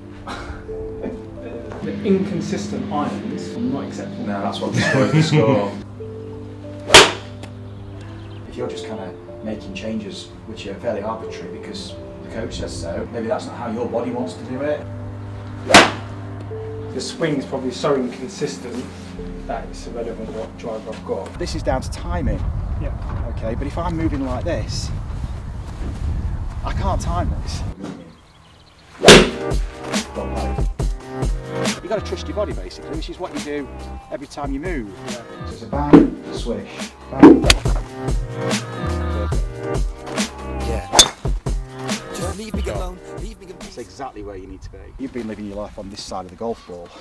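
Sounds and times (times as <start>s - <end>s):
golf iron striking ball: 6.8s - 7.5s, 15.6s - 16.2s, 29.0s - 29.5s, 35.9s - 36.3s, 37.2s - 37.7s, 40.9s - 41.2s
music with a beat: 29.3s - 31.9s, 34.5s - 43.7s.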